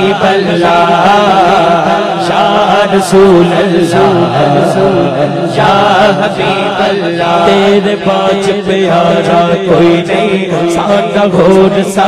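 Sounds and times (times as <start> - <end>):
male voices chanting drone: 0.0 - 12.0
man singing devotional melody: 0.0 - 12.0.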